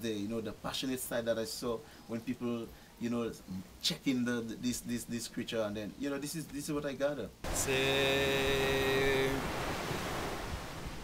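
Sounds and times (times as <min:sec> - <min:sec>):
surf: 0:07.4 - 0:11.0
wind noise on microphone: 0:07.5 - 0:11.0.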